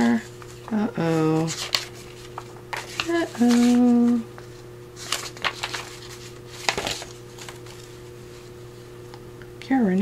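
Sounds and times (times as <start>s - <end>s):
paper rustling: 0.0s - 8.5s.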